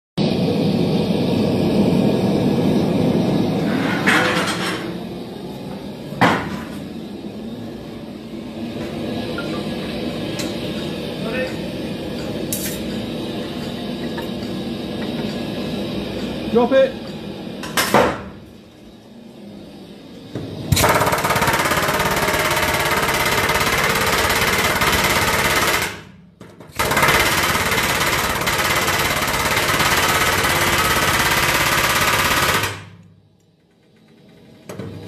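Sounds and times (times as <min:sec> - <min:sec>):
low hum with hiss: 0:00.2 - 0:23.7
gas furnace roaring: 0:00.2 - 0:35.0.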